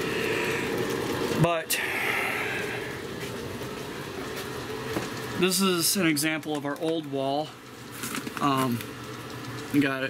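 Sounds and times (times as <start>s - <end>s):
blower fan rushing: 0.0s - 10.0s.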